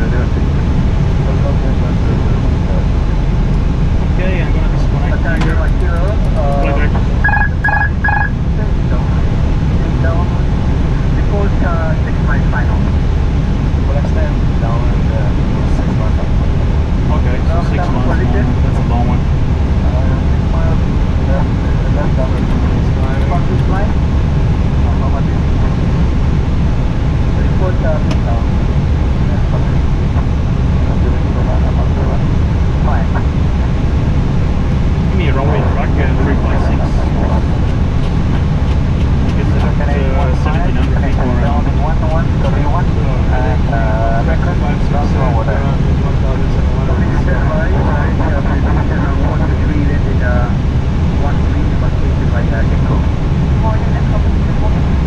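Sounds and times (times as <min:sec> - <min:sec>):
faint voices: 0:00.0 - 0:34.0, 0:34.6 - 0:55.0
airflow and engine rumble: 0:00.0 - 0:55.0.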